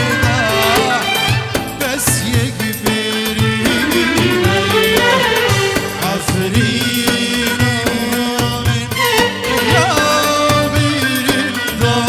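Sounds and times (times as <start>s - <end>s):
band accompaniment: 0.0s - 12.0s
man singing: 0.0s - 12.0s
steady drum beat: 0.0s - 12.0s.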